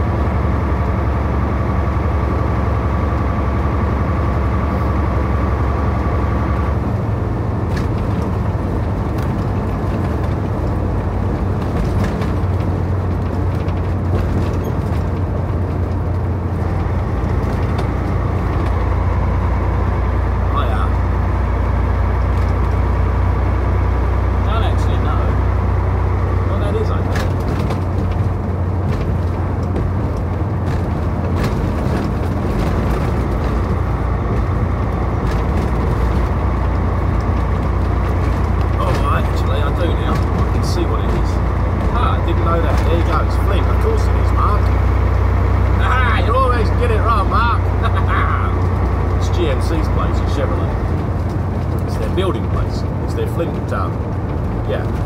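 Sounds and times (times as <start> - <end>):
road and tyre noise: 0.0 - 55.0
truck engine drone: 0.0 - 55.0.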